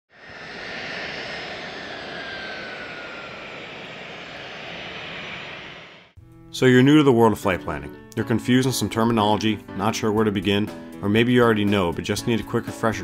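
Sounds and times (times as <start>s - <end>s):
airplane engine noise: 0.1s - 6.2s.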